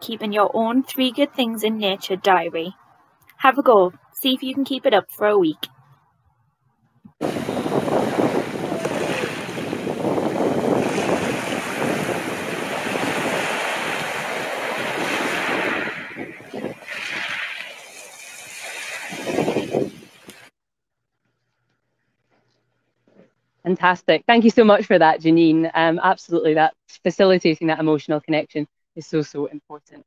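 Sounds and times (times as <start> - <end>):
waves washing over pebbles: 7.2 - 20.2.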